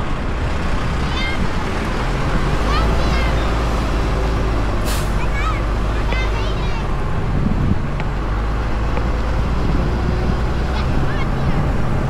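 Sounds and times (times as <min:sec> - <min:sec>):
fire engine rumbling: 0:00.0 - 0:12.0
wind on microphone: 0:06.8 - 0:12.0.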